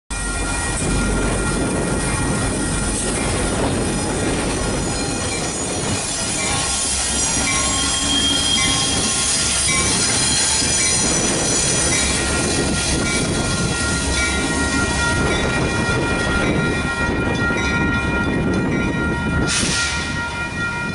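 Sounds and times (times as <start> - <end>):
train wheels squealing: 4.8 - 13.0.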